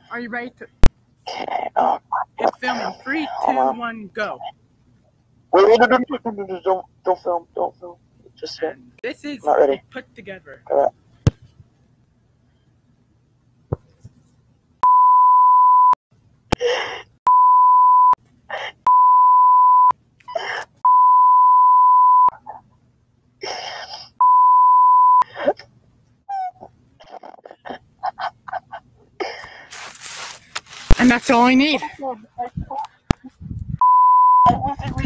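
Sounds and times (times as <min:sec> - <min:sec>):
censor bleeps: 0:14.8 - 0:16.0, 0:17.3 - 0:18.2, 0:18.9 - 0:19.9, 0:20.8 - 0:22.4, 0:24.2 - 0:25.2, 0:33.8 - 0:34.6.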